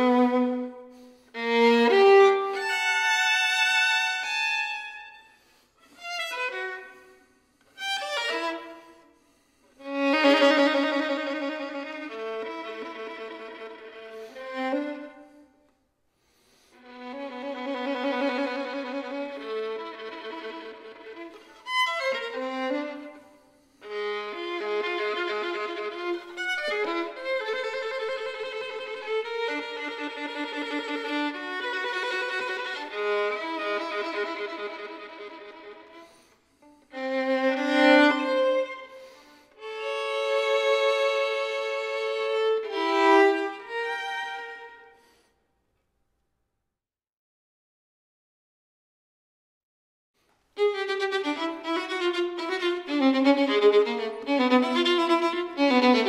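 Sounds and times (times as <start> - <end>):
solo violin playing: 0.0 - 15.7, 16.3 - 45.2, 50.5 - 56.0.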